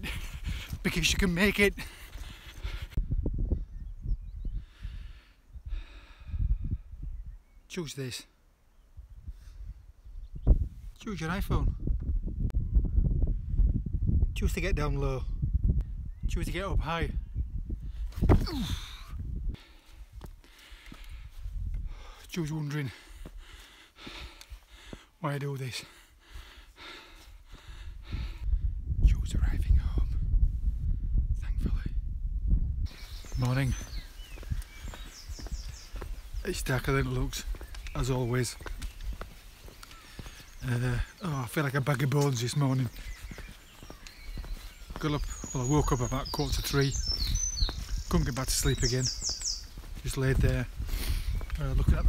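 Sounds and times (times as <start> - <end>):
wind buffeting microphone: 0.0 - 7.6, 8.8 - 22.3, 26.2 - 52.0
bird singing: 3.6 - 4.6, 7.0 - 9.3, 16.0 - 17.6, 32.9 - 52.0
footsteps: 33.0 - 40.6, 41.8 - 51.8.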